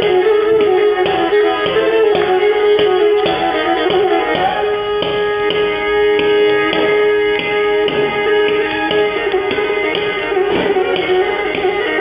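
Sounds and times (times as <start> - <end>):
bowed lyra playing lively tune: 0.0 - 12.0
short percussive taps: 0.0 - 12.0
sustained drone note: 0.0 - 12.0.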